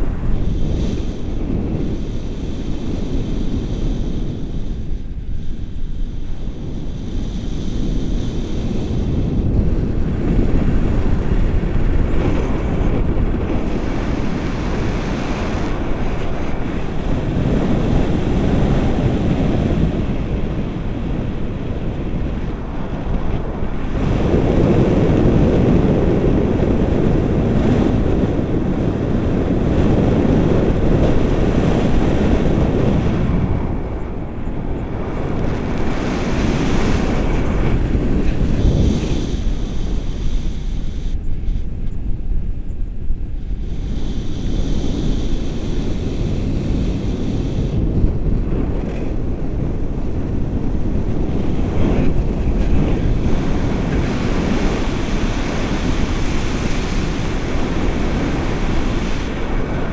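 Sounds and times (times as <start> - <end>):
wind roaring over microphone: 0.0 - 59.9.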